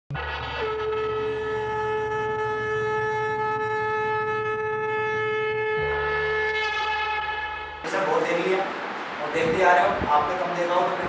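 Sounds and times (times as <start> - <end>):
long horn-like note: 0.1 - 9.2
low rumble: 5.6 - 10.5.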